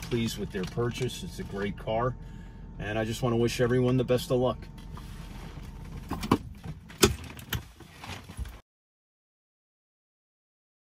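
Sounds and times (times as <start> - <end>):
low hum: 0.0 - 7.8.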